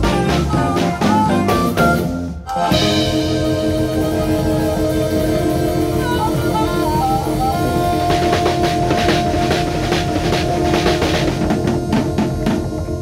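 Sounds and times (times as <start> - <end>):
harmonica melody: 0.0 - 13.0
live band playing: 0.0 - 13.0.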